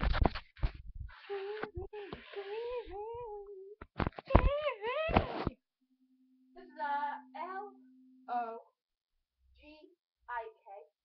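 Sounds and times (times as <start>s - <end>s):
child's sing-song voice: 1.3s - 5.2s.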